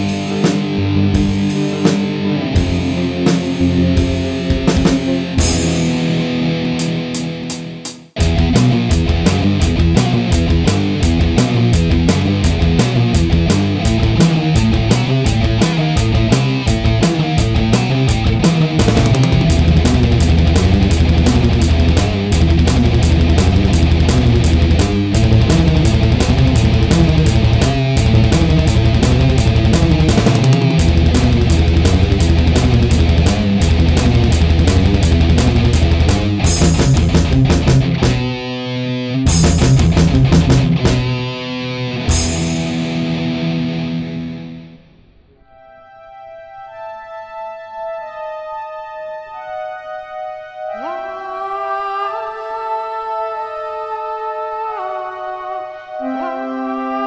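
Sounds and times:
fast drumming: 0.0s - 6.3s, 7.2s - 38.4s, 39.3s - 41.2s, 42.1s - 42.9s
distorted electric guitar riffs: 0.0s - 45.6s.

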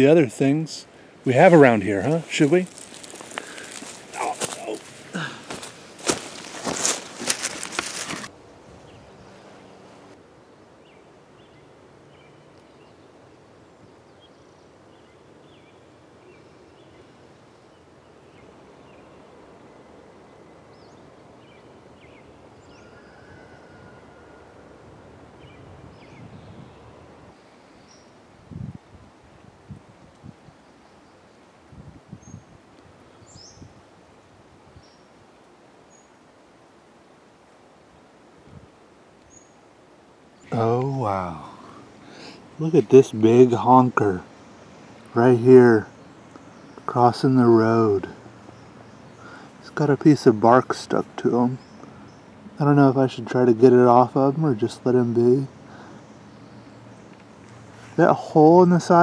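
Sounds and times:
footsteps: 2.1s - 8.3s
faint bird chirps: 10.8s - 24.8s.

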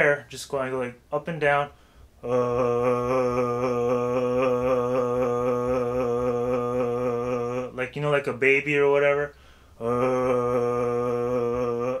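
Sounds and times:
man holding low wobbling tone: 2.2s - 7.8s, 9.8s - 12.0s.

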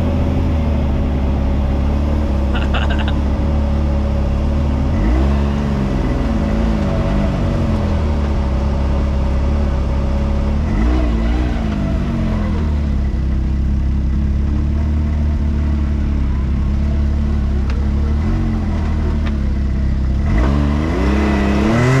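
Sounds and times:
vehicle engine revving under load: 0.0s - 22.0s.

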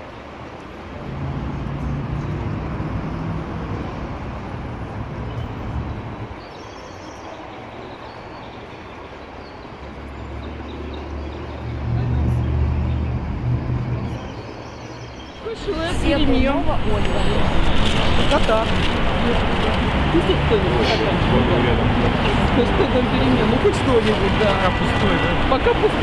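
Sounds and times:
traffic hiss on wet road: 0.0s - 14.2s, 15.4s - 26.0s
heavy vehicle engine rumble: 11.4s - 26.0s.

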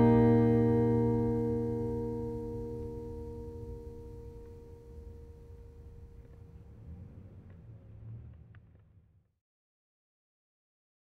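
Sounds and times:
acoustic guitar chord ringing: 0.0s - 6.4s.

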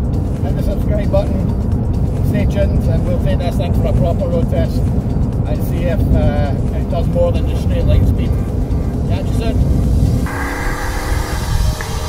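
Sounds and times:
road noise: 8.2s - 12.0s
car engine droning: 10.2s - 12.0s
electronic music: 10.3s - 12.0s.

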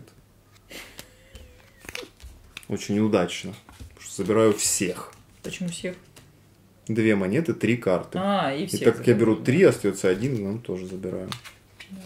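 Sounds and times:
cards clicking and tapping on table: 0.8s - 2.7s
cardboard cards rustling: 0.8s - 6.3s, 10.0s - 12.0s.

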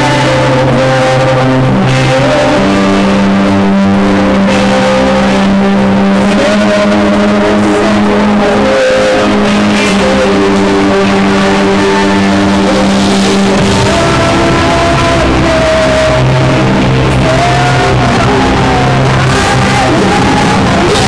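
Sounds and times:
electronic rock band playing: 0.0s - 21.0s
held low synthesizer note: 0.0s - 21.0s
wavering high synth line: 0.0s - 21.0s.

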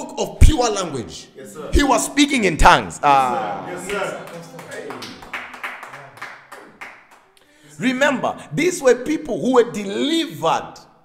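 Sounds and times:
hand claps: 3.9s - 7.5s.

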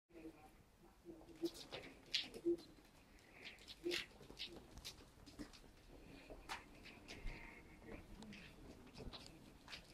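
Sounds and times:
scratchy rustles and clicks: 1.3s - 9.9s.

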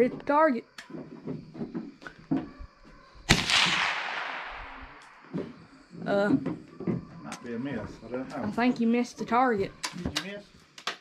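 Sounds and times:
rifle shot: 3.3s - 5.4s.

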